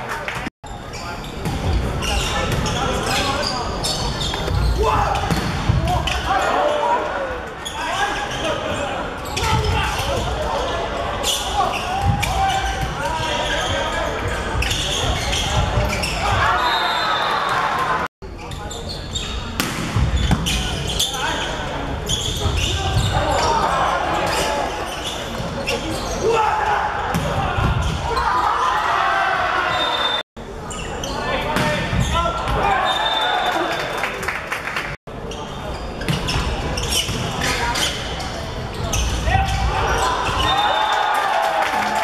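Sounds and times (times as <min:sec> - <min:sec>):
volleyball struck with slaps: 0:19.6 - 0:20.5
players shouting: 0:25.9 - 0:30.2.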